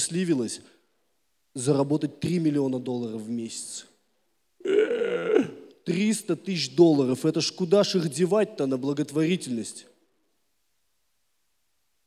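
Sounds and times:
man's raspy guttural vocal sound: 0:04.6 - 0:05.7.

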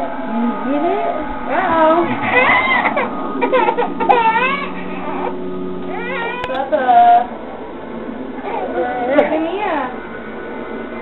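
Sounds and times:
baby crying: 0:02.0 - 0:06.7.

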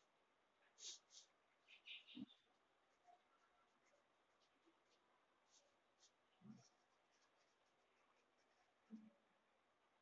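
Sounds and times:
pencil scratching on paper: 0:00.7 - 0:09.0.

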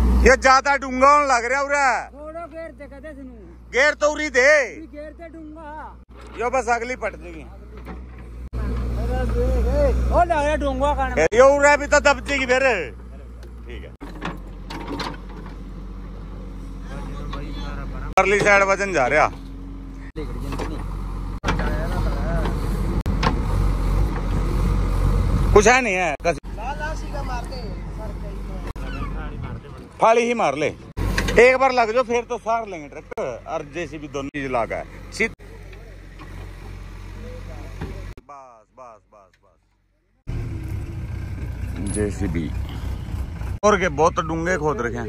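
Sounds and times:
diesel engine running: 0:00.0 - 0:45.0.

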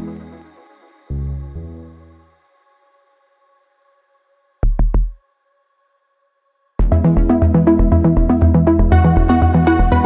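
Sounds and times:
looping electronic track with beat: 0:04.6 - 0:05.2, 0:06.8 - 0:10.0.

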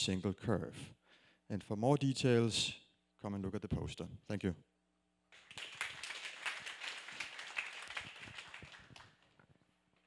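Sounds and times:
audience applauding: 0:05.4 - 0:09.4.

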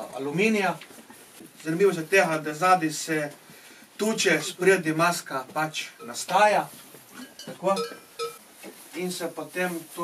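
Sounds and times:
man speaking: 0:04.0 - 0:06.8, 0:07.5 - 0:08.0, 0:08.9 - 0:10.0.

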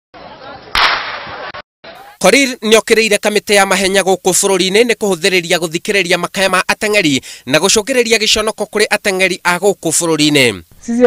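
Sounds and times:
crowd noise: 0:00.2 - 0:02.2
starter's pistol crack: 0:00.8 - 0:01.3.

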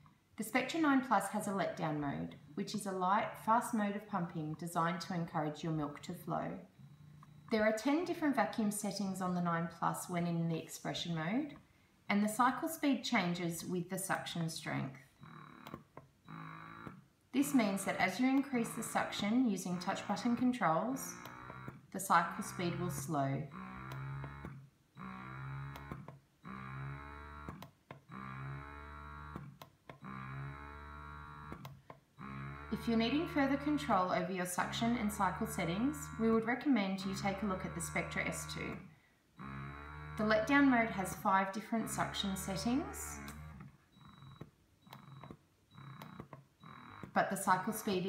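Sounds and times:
breast pump motor humming: 0:06.2 - 0:08.1, 0:15.2 - 0:48.0.

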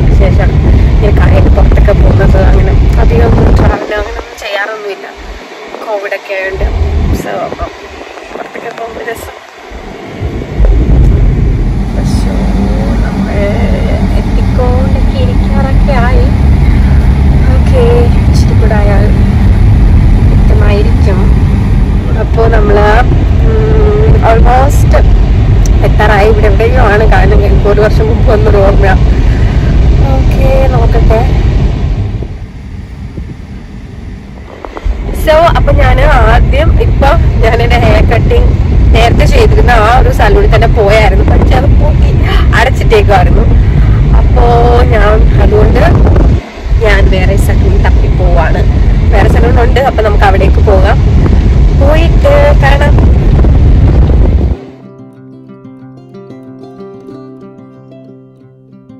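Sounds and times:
car road and engine rumble: 0:00.0 - 0:54.8.

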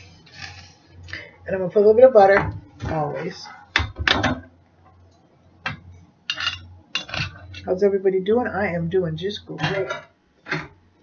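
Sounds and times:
utensil clinking against dish: 0:06.3 - 0:07.7.

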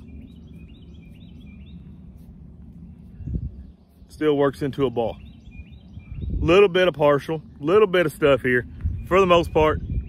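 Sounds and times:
small bird chirping: 0:00.0 - 0:07.8
low background rumble: 0:00.0 - 0:10.0.

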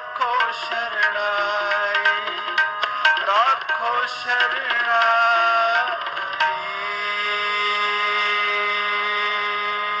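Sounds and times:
harmonium holding a chord: 0:00.0 - 0:10.0.

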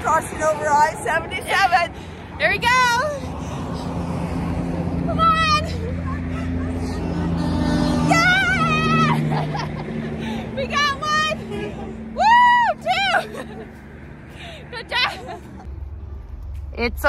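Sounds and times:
highway traffic drone: 0:00.0 - 0:17.0.

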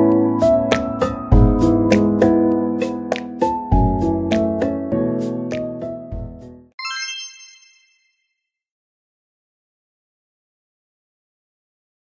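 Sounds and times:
high-pitched chime: 0:06.8 - 0:08.4.

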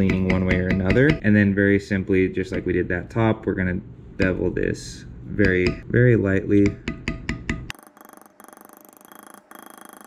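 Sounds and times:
mallet tapping metal tool: 0:00.0 - 0:01.2, 0:05.4 - 0:05.9, 0:06.6 - 0:07.8.

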